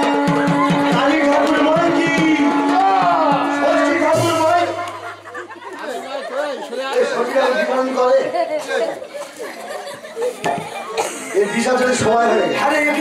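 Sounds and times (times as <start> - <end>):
music: 0.0 - 5.8
voices chattering: 0.0 - 13.0.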